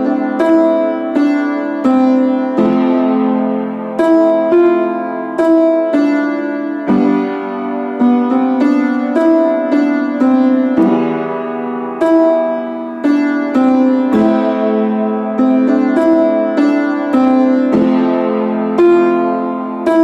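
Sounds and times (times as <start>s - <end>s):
piano notes and chords: 0.0s - 20.0s.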